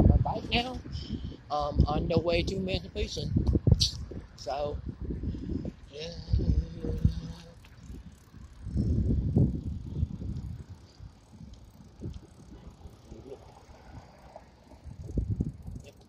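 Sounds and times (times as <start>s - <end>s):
wind rumble on microphone: 0.0s - 16.0s.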